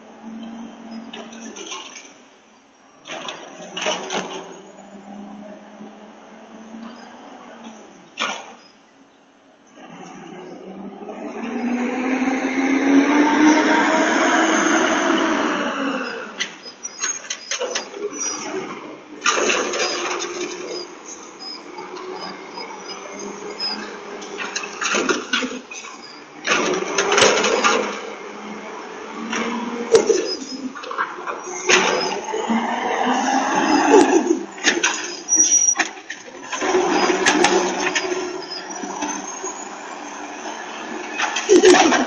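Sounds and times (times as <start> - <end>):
garbage truck engine: 0.0 - 42.0
clanks and bangs of bins: 24.4 - 28.1, 41.2 - 42.0.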